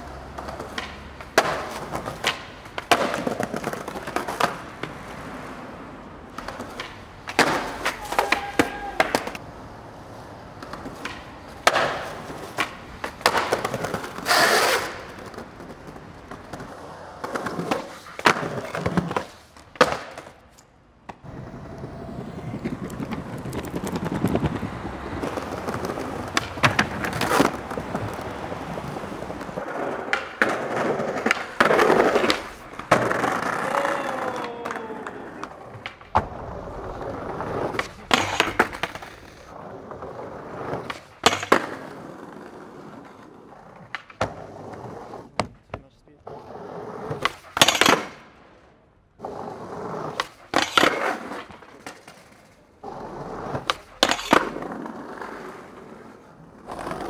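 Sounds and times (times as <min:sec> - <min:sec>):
skateboard popping and landing: 0:00.0 - 0:48.6, 0:49.2 - 0:57.0
skateboard wheels rolling on pavement: 0:00.0 - 0:57.0.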